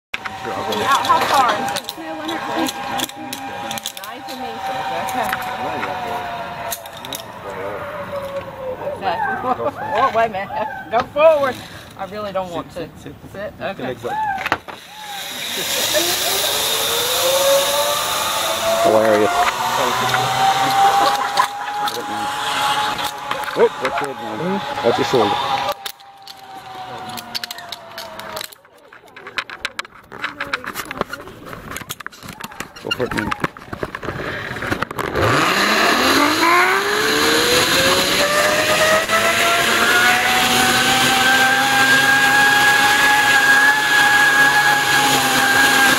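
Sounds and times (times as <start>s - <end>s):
zipline pulleys whining on cable: 0.2s - 12.1s, 14.0s - 29.6s, 32.2s - 45.9s
metal carabiner clicks: 2.6s - 4.4s, 6.7s - 7.3s, 27.1s - 31.1s
metallic clicks of harness gear: 25.7s - 32.4s.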